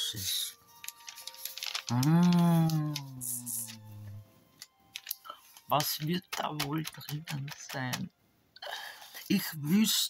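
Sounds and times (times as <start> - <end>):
quiet background music: 0.0 - 10.0
paper rustling and tapping: 0.7 - 3.8, 4.6 - 8.1
woman humming low hmm: 1.9 - 4.2.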